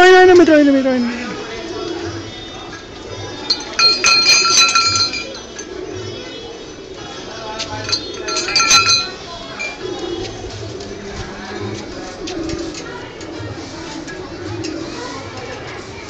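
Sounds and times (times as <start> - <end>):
small temple bell clanging: 3.2 - 10.4.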